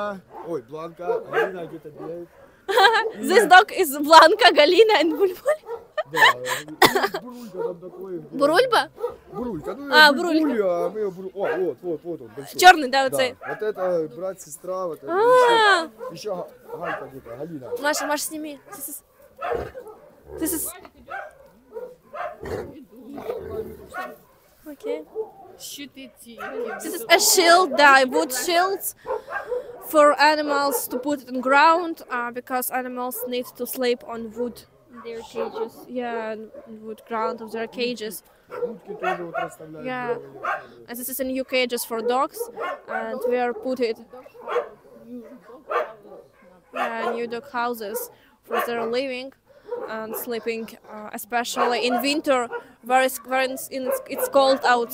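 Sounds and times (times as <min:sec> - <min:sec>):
dogs barking: 0:00.0 - 0:14.2, 0:15.9 - 0:32.3, 0:33.1 - 0:54.9
people talking: 0:02.7 - 0:07.6, 0:20.4 - 0:21.0, 0:25.6 - 0:28.9, 0:29.9 - 0:38.2, 0:40.9 - 0:44.0, 0:46.8 - 0:49.3, 0:49.9 - 0:54.9.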